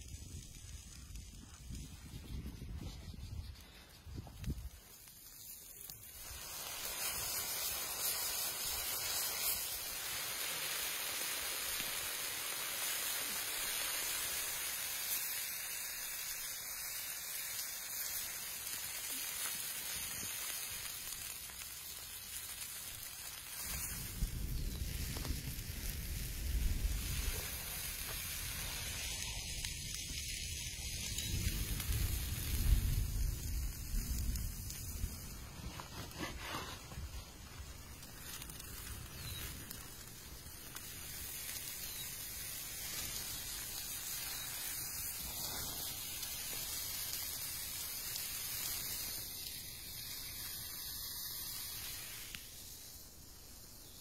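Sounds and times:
food sizzling on a griddle: 0.0s - 54.0s.

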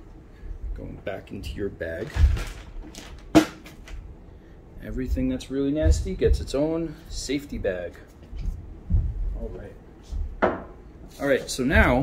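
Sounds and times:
plastic bag rustling: 1.9s - 4.0s.

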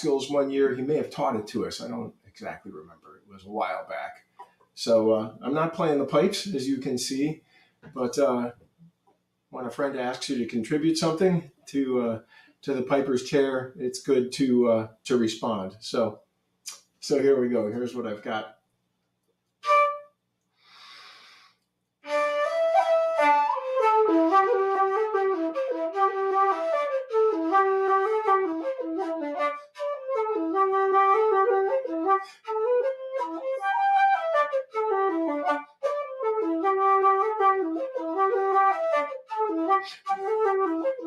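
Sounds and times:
soft intake of breath: 20.6s - 21.6s.

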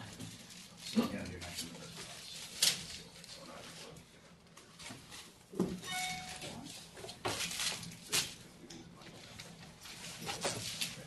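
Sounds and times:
faint indistinct conversation: 0.0s - 11.0s.

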